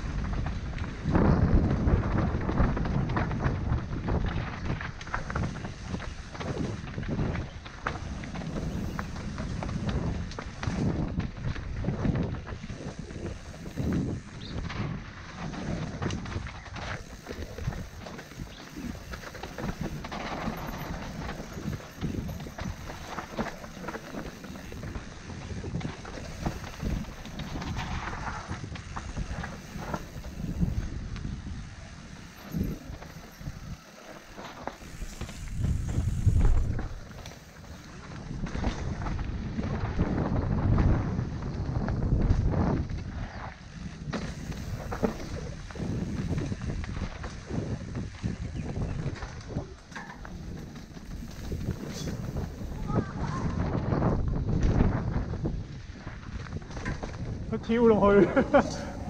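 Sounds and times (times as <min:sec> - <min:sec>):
bike rattling and knocking: 0:00.0 - 0:59.0
bike tyres rolling over dirt: 0:00.0 - 0:59.0
wind buffeting microphone: 0:00.0 - 0:59.0.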